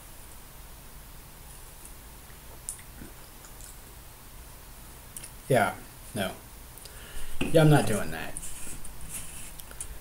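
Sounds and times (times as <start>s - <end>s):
low steady hum: 0.0s - 10.0s
mouth clicks and smacks: 2.3s - 3.8s.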